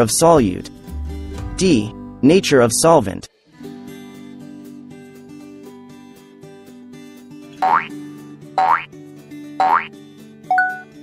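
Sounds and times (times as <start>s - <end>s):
soft acoustic guitar music: 0.3s - 2.4s, 3.5s - 11.0s
cartoon boing sound effects: 7.6s - 7.9s, 8.6s - 8.9s, 9.6s - 9.9s.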